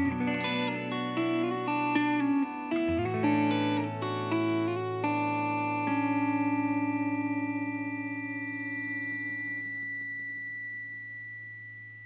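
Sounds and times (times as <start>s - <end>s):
electric guitar chord: 0.0s - 12.0s.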